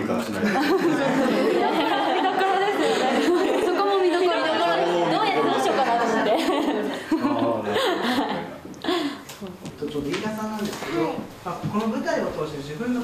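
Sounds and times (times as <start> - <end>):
women laughing: 0.4 - 9.1.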